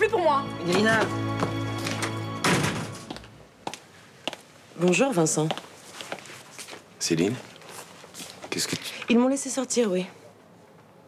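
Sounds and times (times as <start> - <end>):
background music: 0.0 - 3.6
door slamming shut: 2.0 - 3.1.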